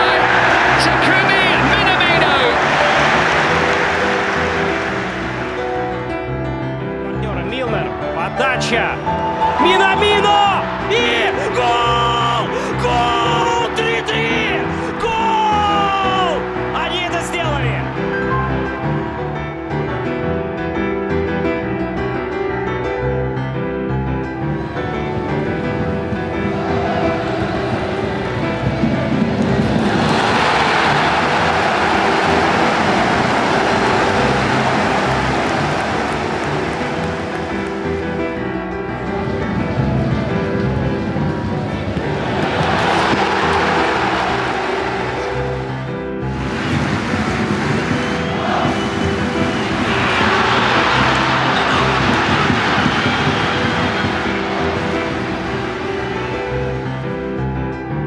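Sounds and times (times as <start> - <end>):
stadium crowd roaring: 0.0 - 20.6, 21.2 - 58.0
background music with sustained notes: 0.0 - 58.0.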